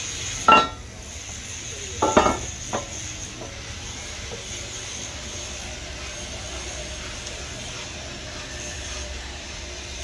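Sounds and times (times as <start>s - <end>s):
machine rumble and hiss: 0.0s - 10.0s.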